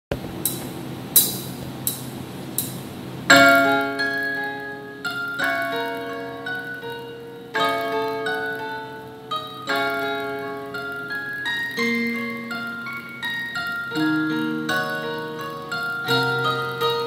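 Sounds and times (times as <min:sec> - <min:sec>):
sustained keyboard chords: 0:00.1 - 0:17.0.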